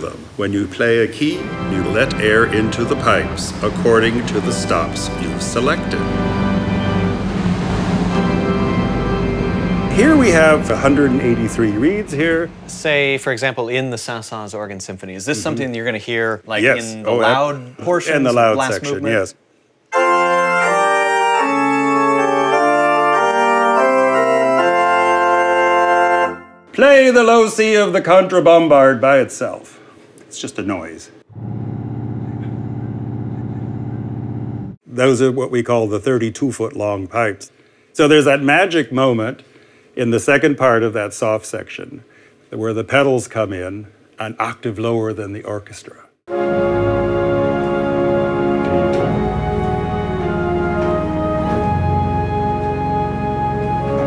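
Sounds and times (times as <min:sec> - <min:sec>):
faint hiss: 0:00.0 - 0:03.6
pipe organ chords: 0:01.3 - 0:12.8, 0:19.9 - 0:26.7, 0:46.3 - 0:54.0.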